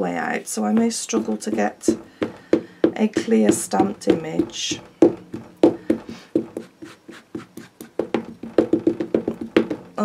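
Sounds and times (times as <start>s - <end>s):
ink pad tapping on stamp: 0.8s - 10.0s.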